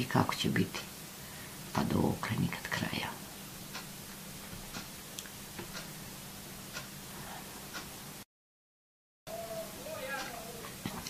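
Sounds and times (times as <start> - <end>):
low steady hum: 0.0 - 8.2.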